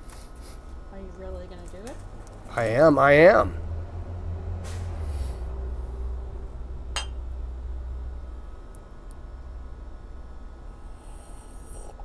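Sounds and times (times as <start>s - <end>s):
steady low hum: 0.0s - 12.0s
crockery clink: 7.0s - 7.2s.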